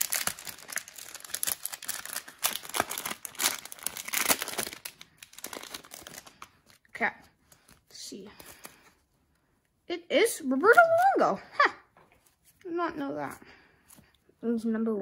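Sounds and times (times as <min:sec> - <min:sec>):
plastic packaging crinkling and tearing: 0:00.0 - 0:06.9.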